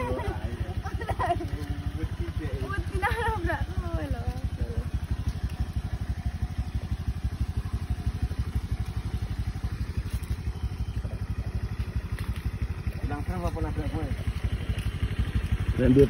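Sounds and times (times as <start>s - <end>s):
scooter engine idling: 0.0s - 16.0s.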